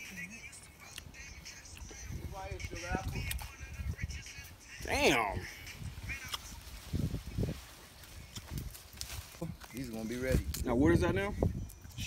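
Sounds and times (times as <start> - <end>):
faint voices talking: 0.0 - 12.0.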